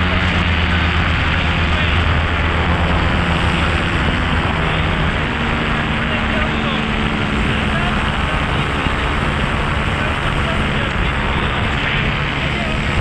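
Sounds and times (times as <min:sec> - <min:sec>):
paramotor engine and propeller: 0:00.0 - 0:13.0
wind rush on microphone: 0:00.0 - 0:13.0.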